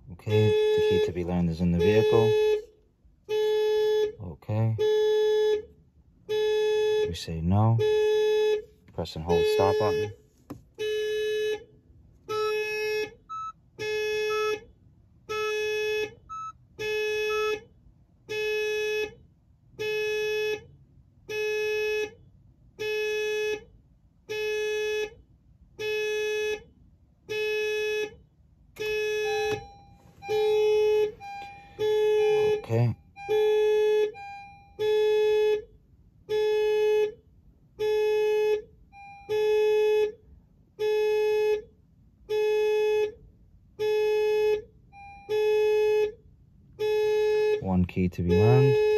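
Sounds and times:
electronic warning beep: 0:13.3 - 0:13.6, 0:16.3 - 0:16.6, 0:28.9 - 0:33.5.

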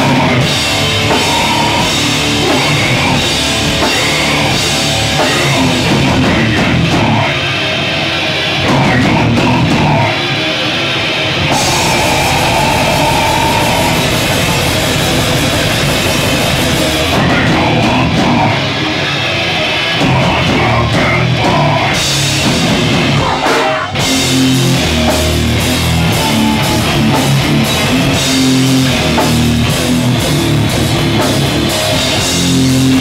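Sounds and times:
band playing heavy rock: 0:00.0 - 0:33.0
drum kit with cymbals: 0:00.0 - 0:33.0
held guitar chords: 0:00.0 - 0:33.0.

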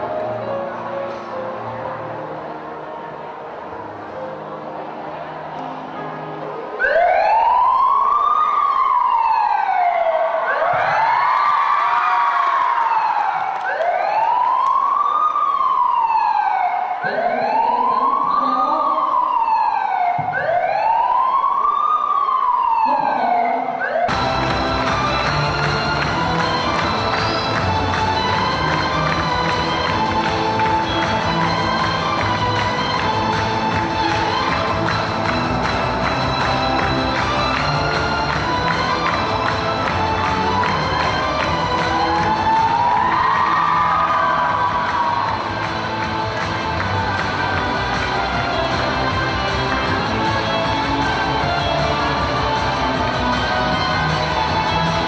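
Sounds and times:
music: 0:00.0 - 0:10.0, 0:23.9 - 0:55.0
wailing siren: 0:06.7 - 0:55.0.

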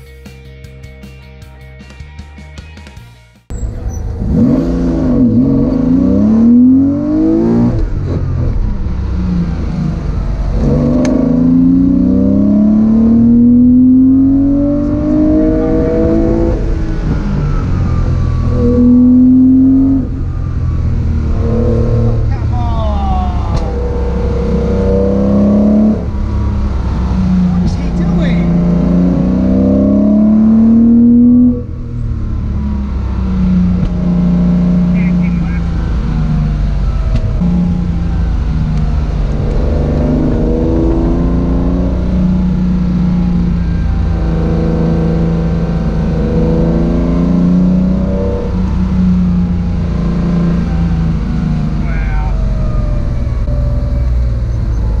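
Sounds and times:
car engine accelerating hard: 0:03.5 - 0:55.0.

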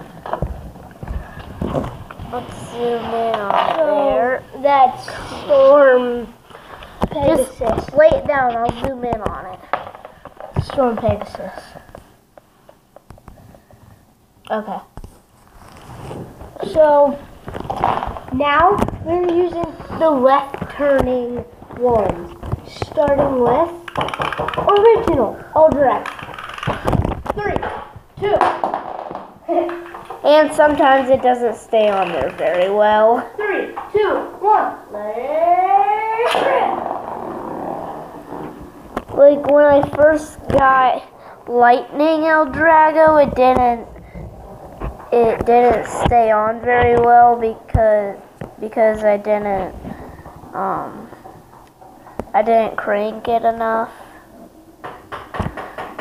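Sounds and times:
spinning top scraping on wooden floor: 0:01.2 - 0:11.9, 0:21.7 - 0:27.9, 0:35.8 - 0:40.6
child counting down: 0:32.8 - 0:36.7.

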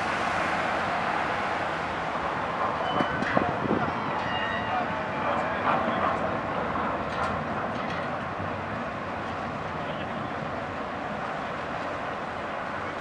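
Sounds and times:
ferry engines rumbling: 0:00.0 - 0:13.0.

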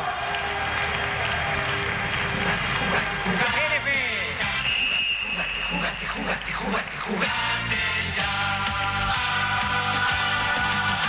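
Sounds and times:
audience applauding and cheering: 0:00.0 - 0:11.0
music: 0:00.0 - 0:11.0.

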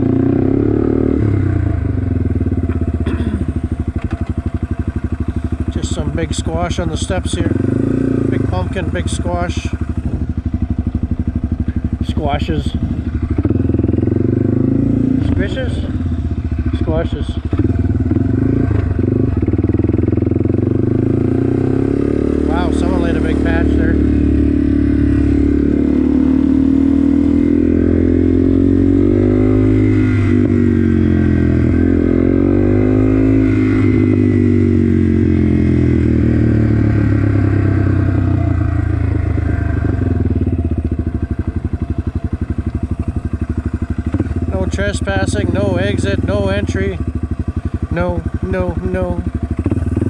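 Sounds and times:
motorcycle engine running: 0:00.0 - 0:50.0.

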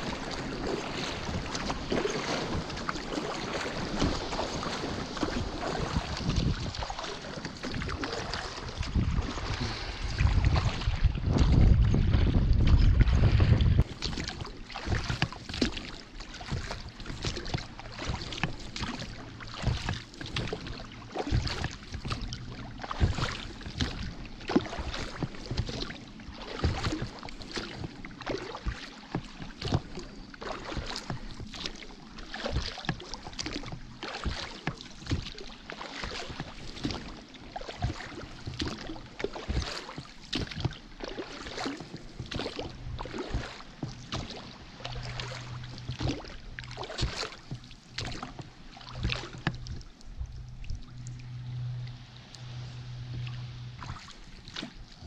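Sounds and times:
water lapping against dinghy: 0:00.0 - 0:55.0
loud low rumble: 0:49.1 - 0:54.9.

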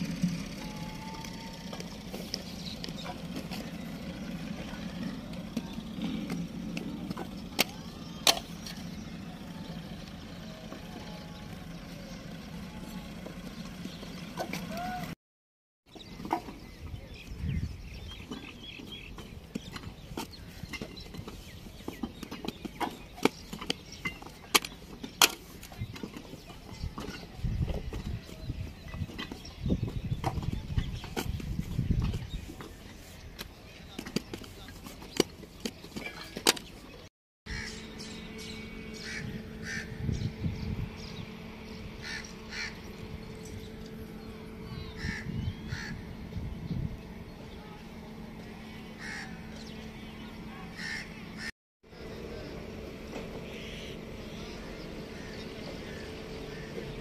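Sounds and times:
low hum: 0:00.0 - 0:15.2, 0:37.5 - 0:57.0
bird calling: 0:35.1 - 0:47.9, 0:48.8 - 0:52.6, 0:53.2 - 0:57.0.

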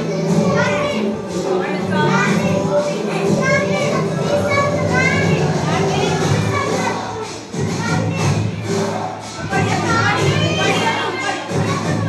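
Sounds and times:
children chattering and calling out: 0:00.0 - 0:12.0
music playing: 0:00.0 - 0:12.0.

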